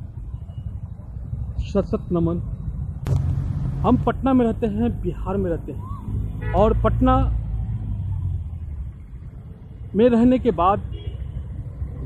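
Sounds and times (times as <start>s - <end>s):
road traffic rumble: 0.0s - 12.0s
vehicle passing: 3.1s - 8.6s.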